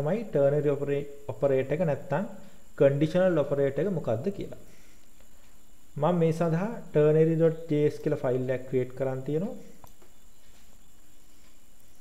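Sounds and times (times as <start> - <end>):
low steady background hiss: 0.0 - 12.0.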